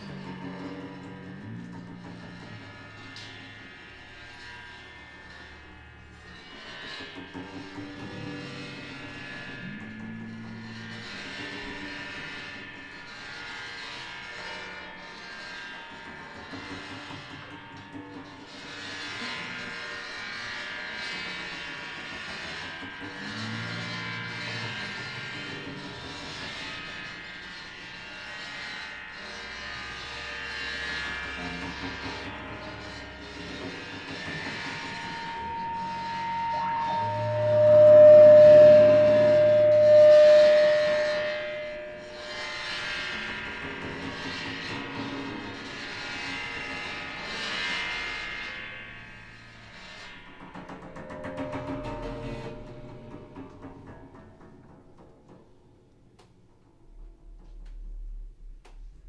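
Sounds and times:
droning experimental noise music: 0.0 - 59.0
low hum: 31.4 - 42.4, 56.2 - 59.0
loud steady tone: 35.1 - 42.3.

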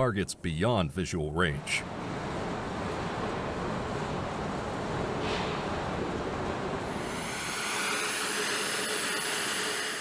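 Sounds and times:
machinery roar and hiss: 1.5 - 10.0
thin high whine: 6.8 - 10.0.

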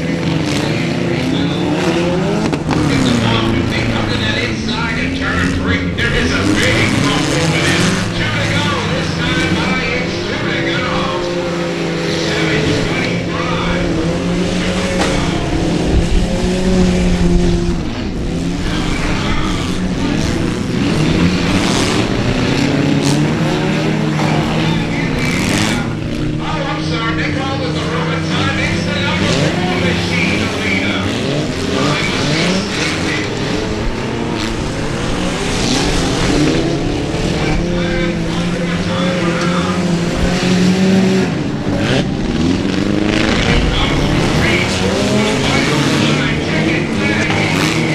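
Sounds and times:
race car engines accelerating: 0.0 - 47.9.

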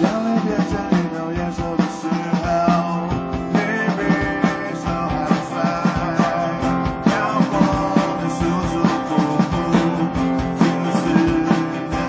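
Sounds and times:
drum kit steady beat: 0.0 - 12.0
electric and acoustic guitars: 0.0 - 12.0
live rock band playing: 0.0 - 12.0.

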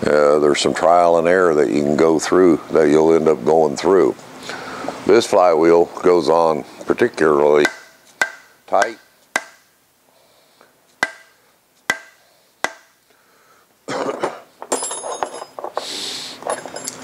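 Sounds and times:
tools clattering in a tray: 14.1 - 17.0.

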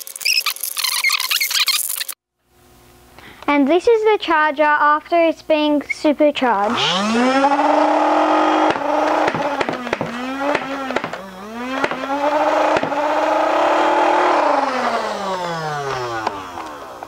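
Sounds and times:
toy blaster motors whining: 0.0 - 2.2, 6.6 - 17.0
foam ball shots cracking: 8.7 - 13.1.

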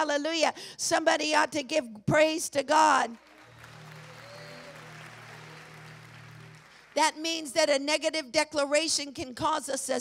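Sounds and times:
congregation applauding softly: 3.2 - 7.0.

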